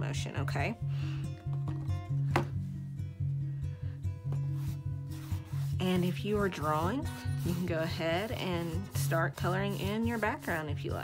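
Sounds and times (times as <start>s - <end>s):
background music with bass line: 0.0s - 11.0s
paintbrush scrubbing on canvas: 4.4s - 11.0s.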